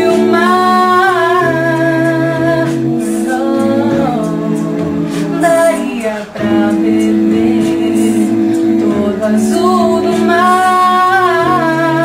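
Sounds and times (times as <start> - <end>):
a cappella group singing harmony: 0.0 - 12.0.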